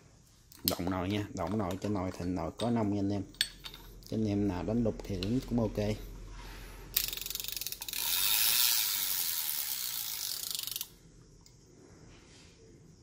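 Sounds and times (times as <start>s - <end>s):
fishing reel clicking: 6.9s - 11.0s.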